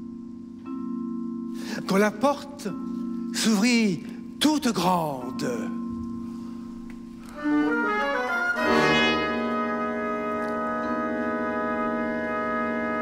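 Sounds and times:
symphony orchestra playing: 0:07.2 - 0:13.0.

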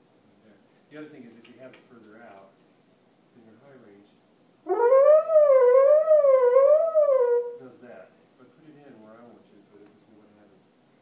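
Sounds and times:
french horn sustained note: 0:04.7 - 0:07.6.

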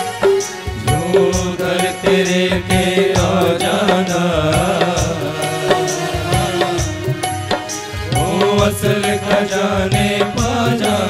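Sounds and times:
even percussion beat: 0:00.0 - 0:11.0
instrumental accompaniment: 0:00.0 - 0:11.0
man singing into a microphone: 0:00.7 - 0:11.0.

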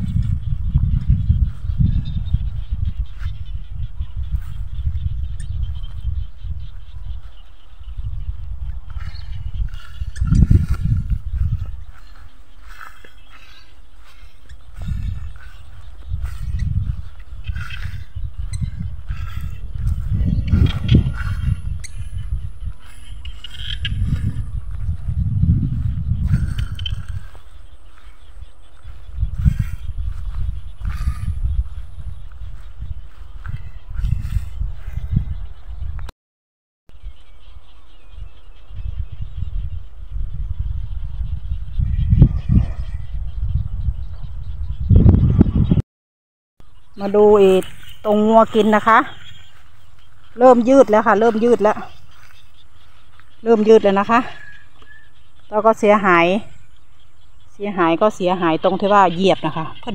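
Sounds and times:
wind buffeting microphone: 0:00.0 - 0:36.1, 0:37.0 - 0:45.8, 0:46.6 - 0:59.9.

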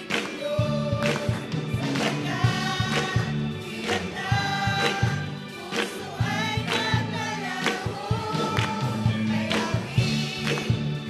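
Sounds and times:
choir singing gospel song: 0:00.0 - 0:11.0
strummed electric guitar: 0:00.0 - 0:11.0.

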